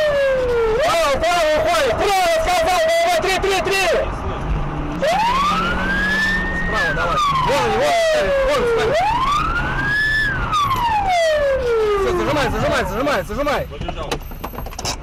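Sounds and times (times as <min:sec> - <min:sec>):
police siren wailing: 0:00.0 - 0:04.0, 0:04.9 - 0:13.6
car engine drone: 0:00.0 - 0:15.0.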